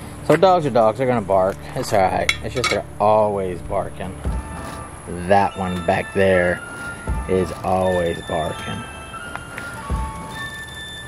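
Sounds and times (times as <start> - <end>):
dull low thump: 9.8 - 10.3.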